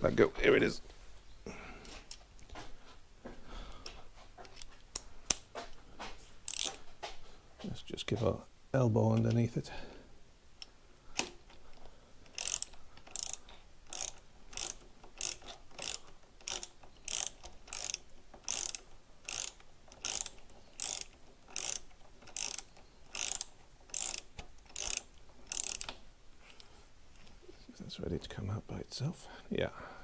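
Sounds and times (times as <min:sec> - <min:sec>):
ratchet wrench clicking: 0:06.5 - 0:06.8, 0:12.3 - 0:26.0.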